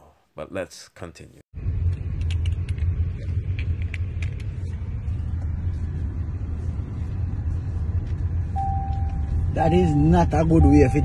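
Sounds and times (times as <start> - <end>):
car cabin rumble: 1.7 - 11.0
faint steady tone: 8.4 - 11.0.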